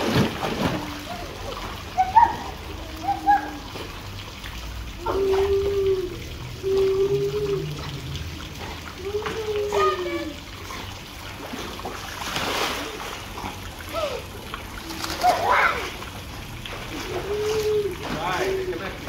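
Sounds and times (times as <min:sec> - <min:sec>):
pool water splashing: 0:00.0 - 0:19.0
water jet trickling: 0:00.0 - 0:19.0
person calling wordlessly: 0:01.9 - 0:03.7, 0:09.0 - 0:10.4.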